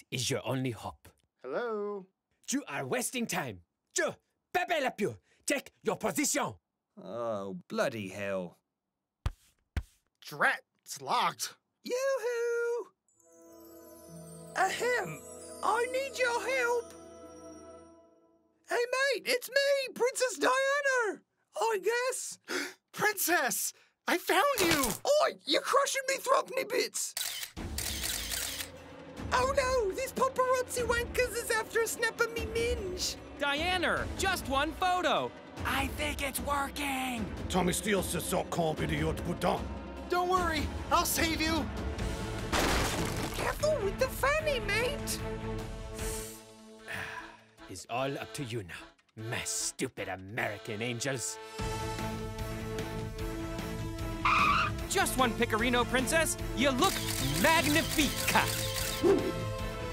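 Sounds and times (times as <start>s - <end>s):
cartoon background music: 13.1s - 21.7s, 28.8s - 59.9s
camera shutters snapping: 24.6s - 25.0s, 27.2s - 28.7s, 56.8s - 59.3s
tire screech sound effect: 54.2s - 54.8s.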